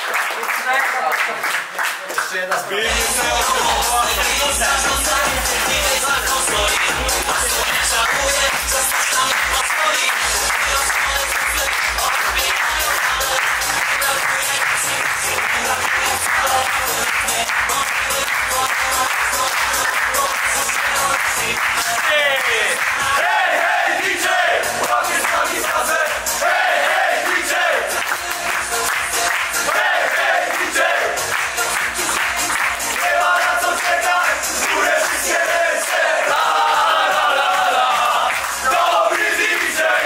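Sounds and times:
hand claps: 0.0 - 23.2, 24.6 - 26.4, 27.2 - 40.0
men chanting and singing: 2.8 - 40.0
music with steady beat: 2.8 - 40.0.

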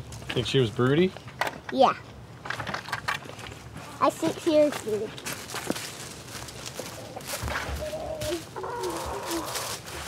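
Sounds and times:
footsteps crunching dry leaves: 4.7 - 10.0
hens clucking: 6.6 - 10.0.

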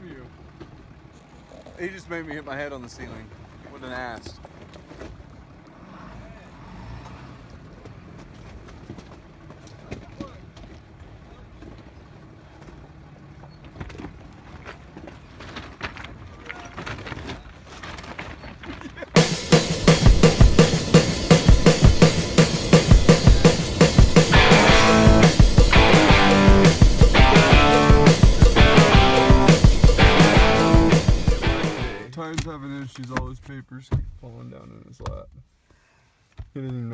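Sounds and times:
truck rumbling over rocky track: 0.0 - 32.1
strummed rock guitar music: 19.2 - 32.1.

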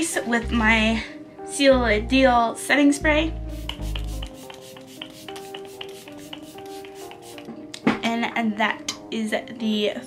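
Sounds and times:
soft background music: 0.0 - 10.0
spray bottle spritzes: 3.6 - 7.5.

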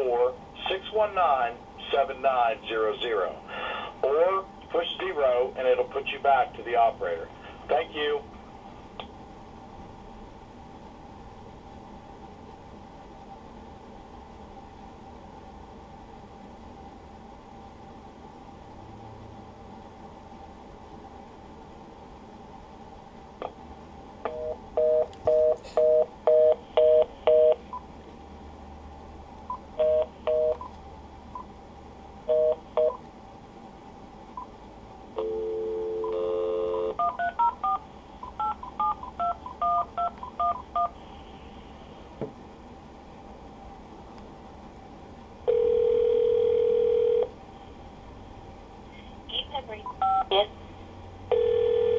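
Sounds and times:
faint steady phone line tone: 24.3 - 27.9, 29.5 - 30.7, 32.3 - 33.0, 35.2 - 41.0, 45.5 - 47.4, 51.3 - 51.9
phone keypad beeps: 36.0 - 40.9.

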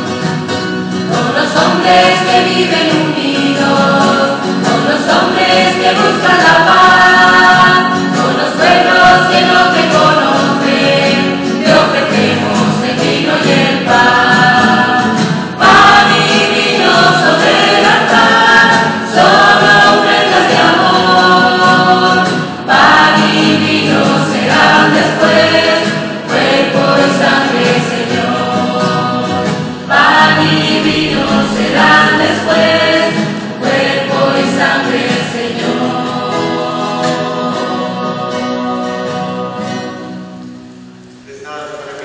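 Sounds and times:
choir singing a hymn: 0.0 - 40.8
strummed acoustic guitar: 0.0 - 42.0.

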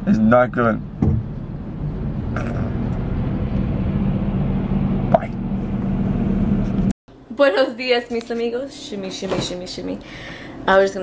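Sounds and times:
traffic engine hum: 0.0 - 6.9
truck engine alongside: 0.0 - 6.9.

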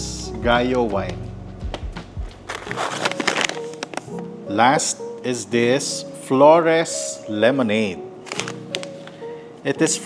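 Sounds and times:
background music: 0.0 - 10.0
bag crinkling: 2.5 - 4.2, 8.2 - 9.2.

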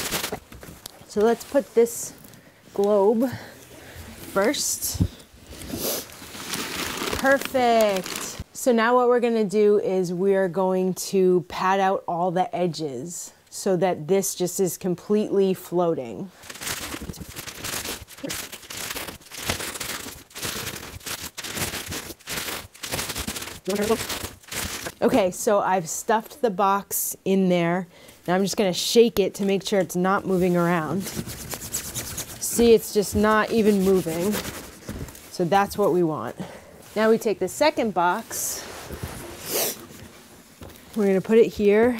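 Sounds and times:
cardboard and paper rustling: 0.0 - 2.9, 3.9 - 8.4, 16.4 - 25.1, 30.3 - 35.9, 38.1 - 41.9.

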